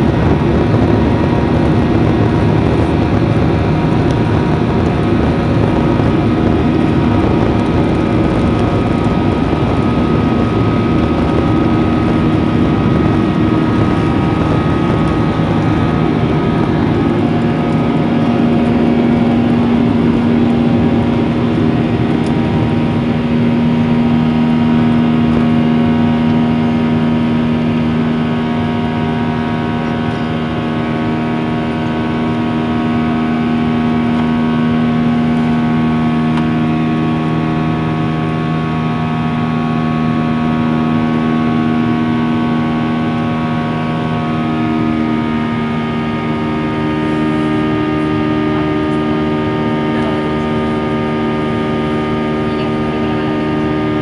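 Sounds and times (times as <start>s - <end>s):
jet engine drone: 0.0s - 54.0s
wheels rumbling on runway: 0.0s - 54.0s.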